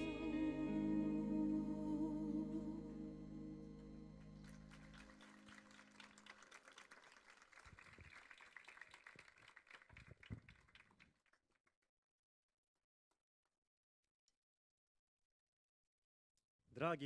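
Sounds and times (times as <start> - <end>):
band sustained chord: 0.0 - 6.4
audience applause: 4.1 - 11.0.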